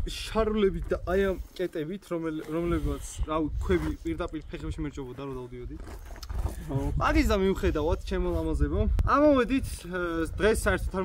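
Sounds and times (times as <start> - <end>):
men talking: 0.0 - 5.9, 6.6 - 11.0
man's low drawn-out vocal sound: 6.4 - 11.0.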